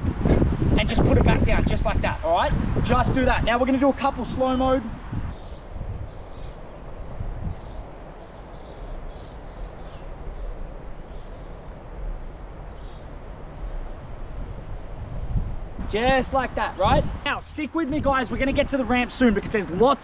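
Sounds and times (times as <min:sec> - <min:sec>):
wind rumble on microphone: 0:00.0 - 0:20.0.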